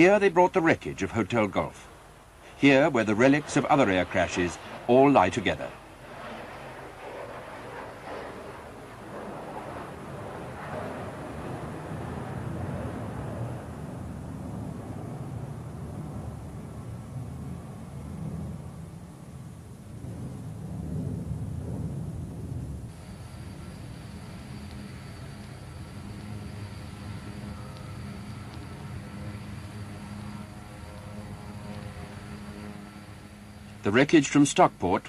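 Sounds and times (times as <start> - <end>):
steady hiss: 0.0 - 9.7, 22.8 - 35.0
low outdoor rumble: 0.0 - 35.0.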